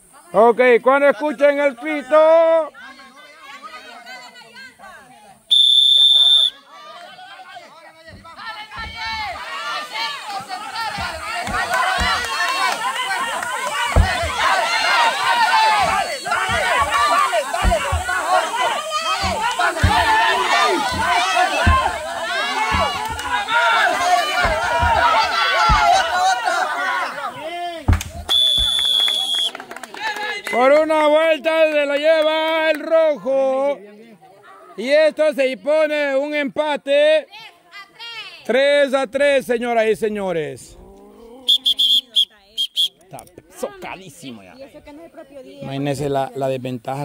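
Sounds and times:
people shouting and cheering: 1.2 - 36.5
referee's whistle blast: 5.5 - 6.6, 28.3 - 29.6, 41.5 - 43.0
dull thumps: 8.0 - 26.8, 27.8 - 29.3.

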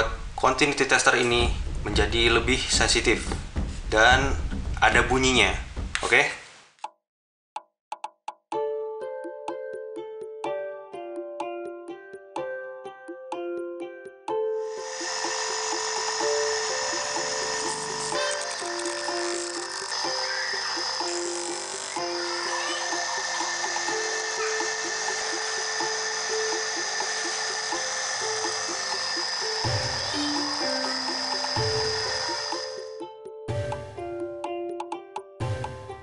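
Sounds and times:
background music: 8.5 - 36.0
electric sanding motor running: 14.6 - 32.9.

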